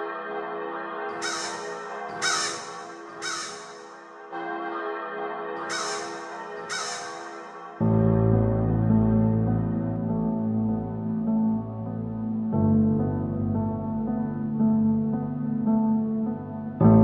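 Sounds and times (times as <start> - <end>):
crow cawing: 1.1 - 4.1, 5.6 - 7.7
deep synth chord: 7.8 - 17.0.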